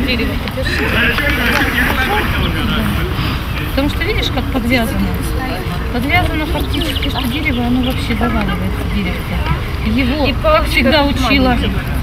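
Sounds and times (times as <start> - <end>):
voices talking indistinctly: 0.0 - 12.0
steady low rumble: 0.4 - 11.1.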